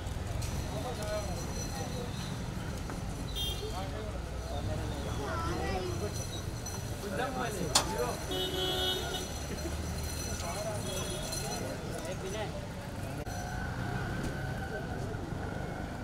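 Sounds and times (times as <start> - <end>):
vehicles rumbling: 0.0 - 16.0.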